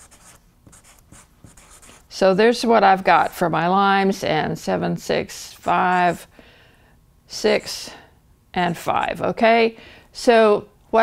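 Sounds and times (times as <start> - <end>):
marker pen writing on paper: 0.0 - 2.1, 5.6 - 6.2.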